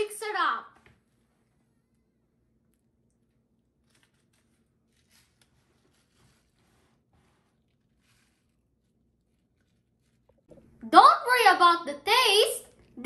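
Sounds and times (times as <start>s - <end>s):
sachet tearing and rustling: 3.6s - 6.8s.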